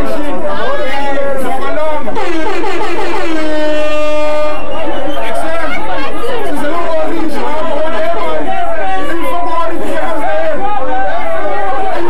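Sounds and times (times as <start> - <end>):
man rapping into microphone: 0.0 - 12.0
voices chattering: 0.0 - 12.0.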